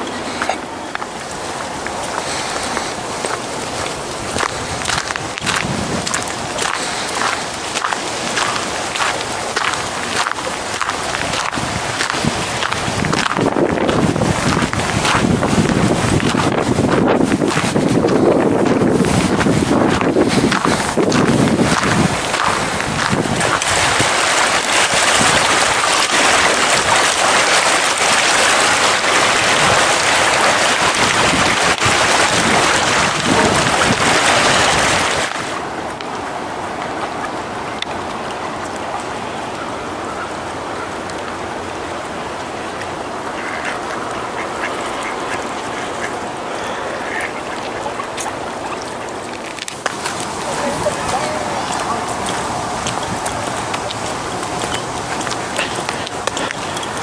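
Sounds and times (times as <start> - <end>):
wind on microphone: 0.0 - 39.8, 47.9 - 57.0
rushing water: 0.0 - 57.0
ducks quacking: 43.3 - 49.1.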